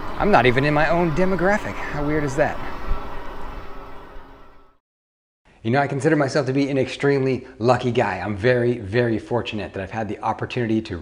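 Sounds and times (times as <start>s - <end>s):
wind noise: 0.0s - 4.5s.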